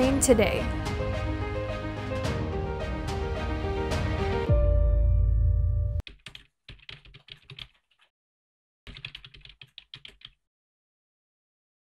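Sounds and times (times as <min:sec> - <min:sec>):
background music: 0:00.0 - 0:06.0
computer keyboard typing: 0:06.0 - 0:08.1, 0:08.9 - 0:10.4.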